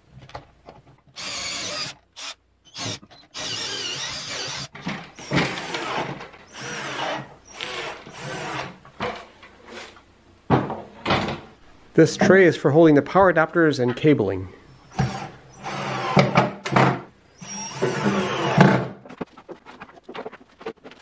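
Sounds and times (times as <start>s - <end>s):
cordless drill boring into wood: 1.2s - 8.7s, 14.9s - 16.3s, 17.4s - 18.7s.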